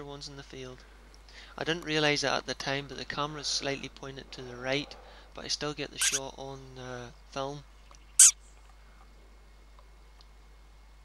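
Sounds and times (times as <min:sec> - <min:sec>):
faint field background: 0:00.0 - 0:11.0.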